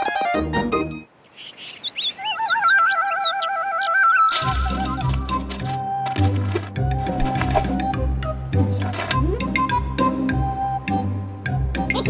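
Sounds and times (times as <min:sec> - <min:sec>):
rising and falling bird chirps: 0:01.1 - 0:05.0
warbling bird trill: 0:01.3 - 0:05.2.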